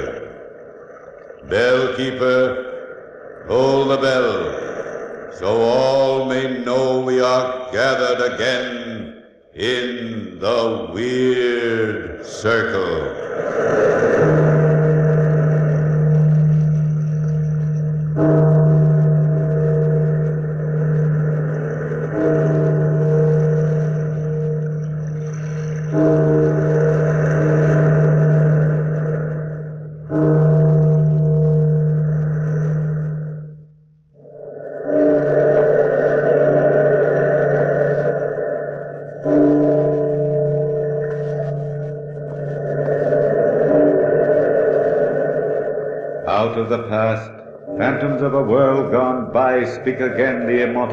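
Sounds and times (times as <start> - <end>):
deep bell tolling: 14.0 - 33.9, 34.8 - 50.9.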